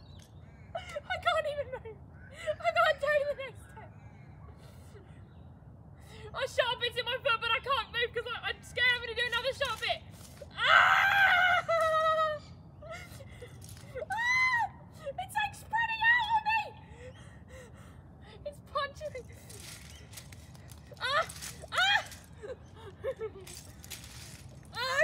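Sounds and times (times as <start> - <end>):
woman crying in pain: 10.6 - 15.2, 20.9 - 23.7.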